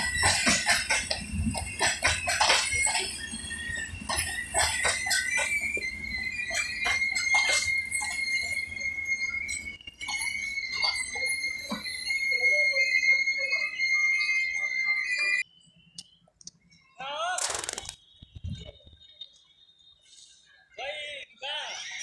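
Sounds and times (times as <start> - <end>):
train brakes squealing: 0.0 - 15.4
wheel clicks: 17.4 - 18.0.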